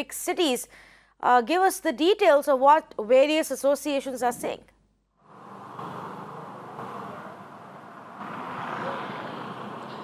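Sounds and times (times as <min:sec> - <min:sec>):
street traffic noise: 0:05.2 - 0:10.0.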